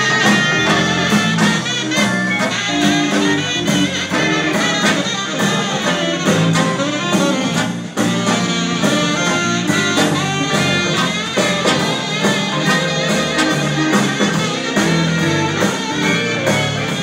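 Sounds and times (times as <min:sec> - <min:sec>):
drum kit: 0:00.0 - 0:17.0
live jazz band playing: 0:00.0 - 0:17.0
saxophones: 0:00.0 - 0:17.0
trombone: 0:00.0 - 0:17.0
trumpets: 0:00.0 - 0:17.0.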